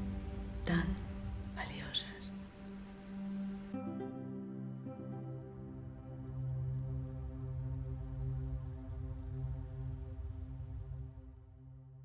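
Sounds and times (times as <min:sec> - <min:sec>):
ambient meditation music: 0:00.0 - 0:12.0.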